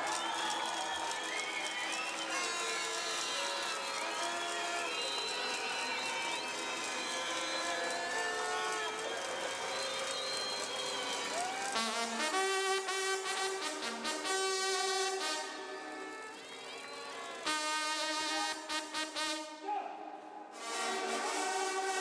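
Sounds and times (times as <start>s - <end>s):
crowd cheering and clapping: 0.0s - 19.2s, 20.6s - 22.0s.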